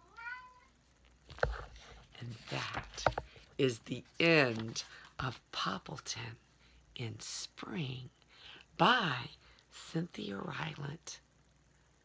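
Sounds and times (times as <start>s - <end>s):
meow-like call: 0.0s - 0.7s.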